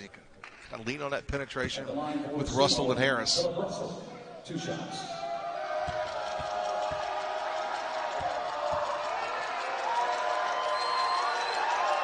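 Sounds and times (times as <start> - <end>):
arena crowd noise: 1.9 - 12.0
basketball bouncing on hardwood: 5.8 - 7.1.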